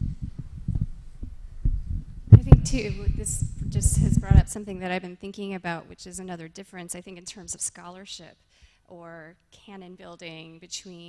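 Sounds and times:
microphone handling thumps: 0.0 - 4.8.

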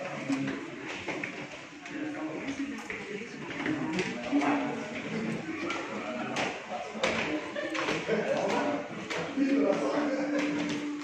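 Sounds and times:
people chattering in echoing hall: 0.0 - 11.0.

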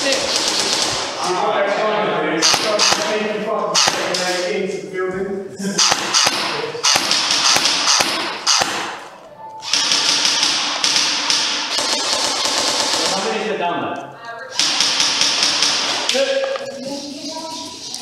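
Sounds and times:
airsoft guns firing: 0.0 - 1.2, 2.4 - 4.4, 5.8 - 13.5, 14.5 - 16.4.

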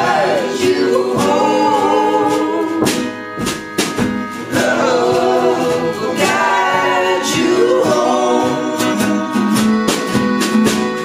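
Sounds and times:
acoustic guitar strums: 0.0 - 11.0
voices singing in harmony: 0.0 - 11.0.

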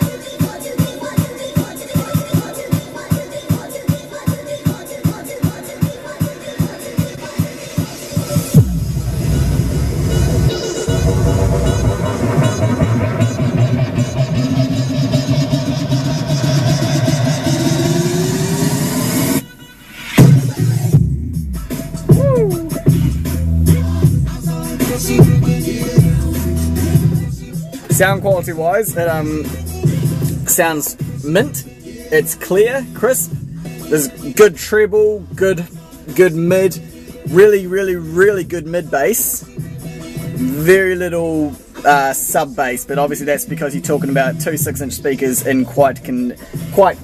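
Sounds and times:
electronic dance music in car: 0.0 - 47.0.

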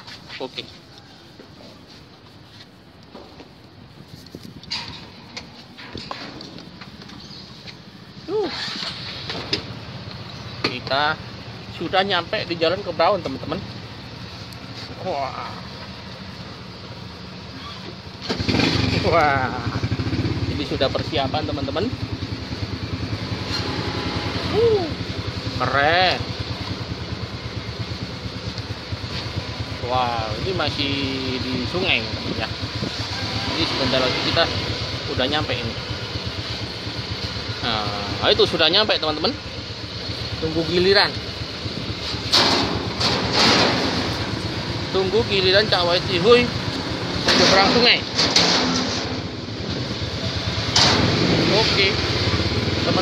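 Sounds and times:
engine running steadily: 2.3 - 53.0.

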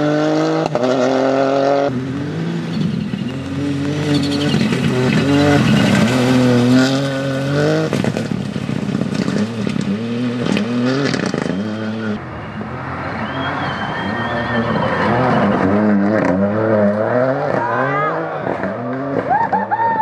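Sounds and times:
rally car engine revving: 0.0 - 20.0
gravel clattering under tyres: 2.1 - 11.9.

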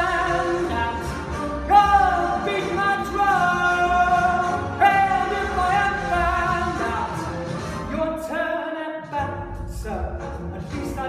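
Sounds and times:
man singing a show tune: 0.0 - 11.0.

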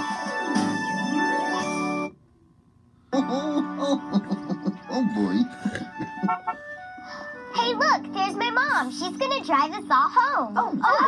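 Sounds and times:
gentle background music: 3.2 - 10.6
child talking excitedly: 7.6 - 11.0.

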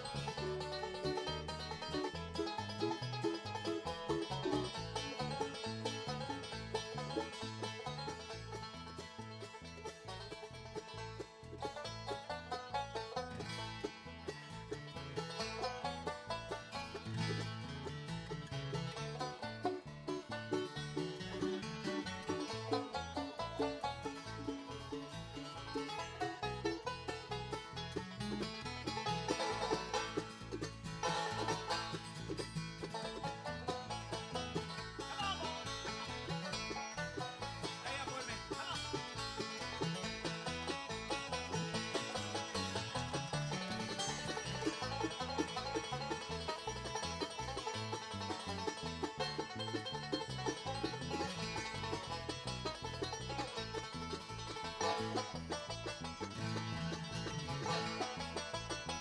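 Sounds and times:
acoustic guitar rhythm: 0.0 - 59.0
banjo picking fast notes: 0.0 - 59.0.

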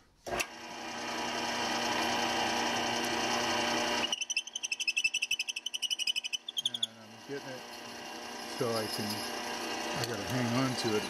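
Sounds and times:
drill press motor humming: 0.3 - 11.0
drill bit rasping into wood: 1.2 - 11.0.

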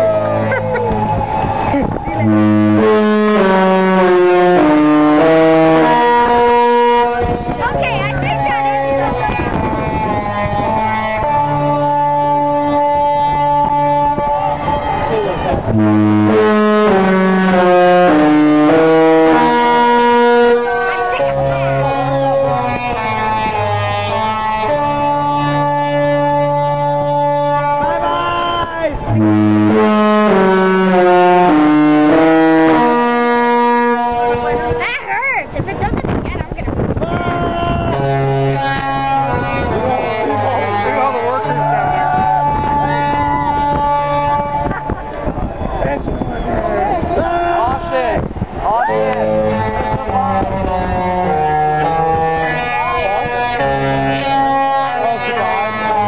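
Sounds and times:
ship horn playing melody: 0.0 - 56.0.

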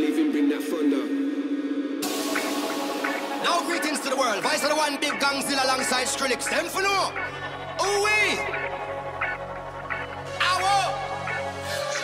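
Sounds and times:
held synth drone: 0.0 - 7.8
voice sample: 0.0 - 8.6.

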